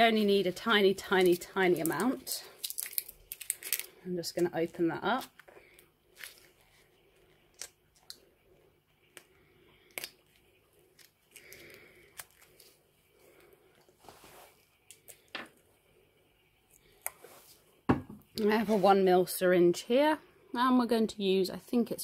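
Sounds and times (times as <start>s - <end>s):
soft rustles: 12.4s - 14.8s.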